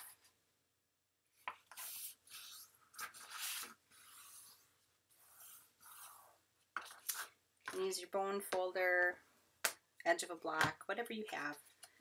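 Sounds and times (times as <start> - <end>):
papery rubbing swipes: 1.7 - 6.4.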